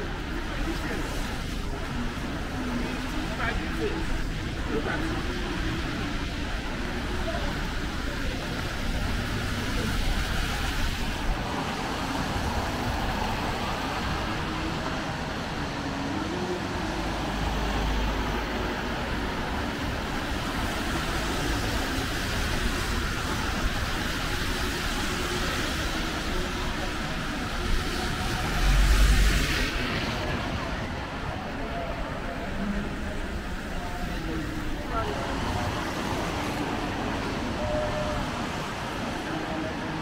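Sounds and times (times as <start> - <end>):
cars passing on wet road: 0.0 - 40.0
heavy vehicle rumble: 0.0 - 40.0.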